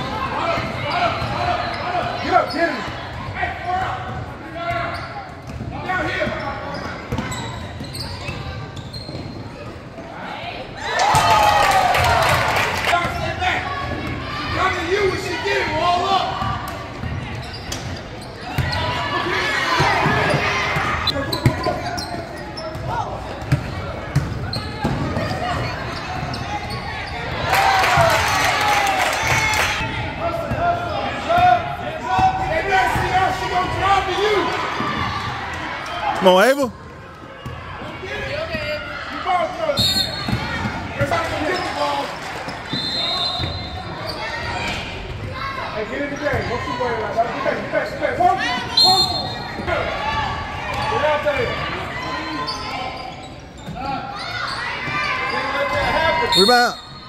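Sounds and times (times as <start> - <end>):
shoe squeaks: 0.8 - 3.0, 4.7 - 5.6, 6.2 - 9.8, 17.4 - 19.0, 20.1 - 23.0, 24.4 - 27.4, 42.6 - 44.5, 52.2 - 57.0.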